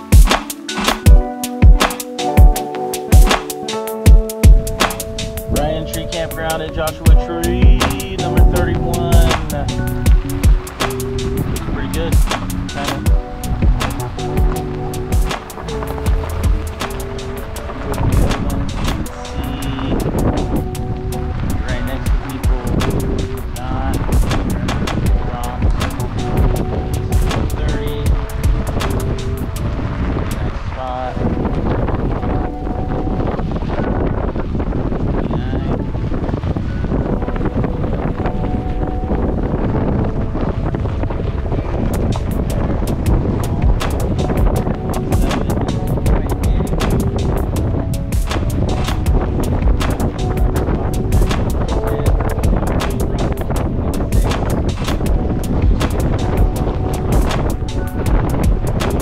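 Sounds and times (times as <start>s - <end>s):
music with held wavering notes: 0.0s - 35.0s, 35.8s - 59.0s
wind rumbling on microphone: 0.0s - 59.0s.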